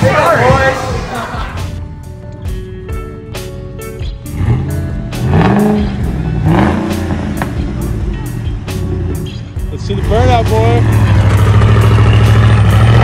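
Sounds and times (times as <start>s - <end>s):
background music with steady beat: 0.0s - 13.0s
truck engine revving: 4.1s - 13.0s.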